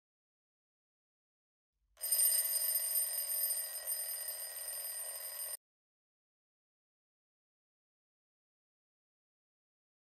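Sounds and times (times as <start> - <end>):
phone alarm ringing: 2.0 - 5.6.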